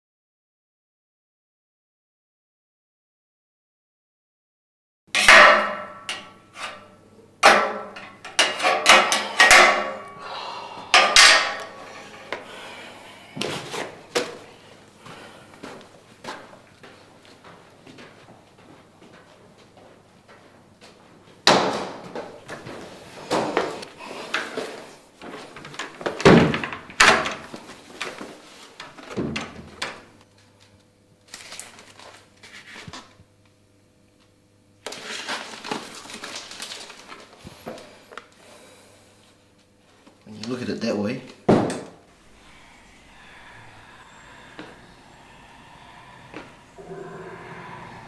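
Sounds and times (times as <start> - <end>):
metal bar banging on metal: 5.2 - 6.8, 7.4 - 10.2, 10.9 - 12.3.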